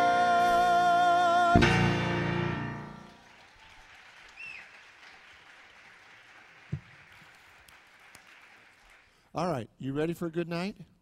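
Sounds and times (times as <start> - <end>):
audience applauding: 3.0 - 9.3
crowd whistle: 3.7 - 5.5.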